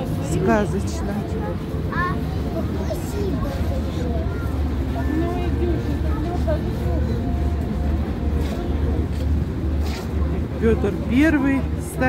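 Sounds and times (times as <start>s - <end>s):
background chatter of voices: 0.0s - 12.0s
steady low rumble: 0.0s - 12.0s.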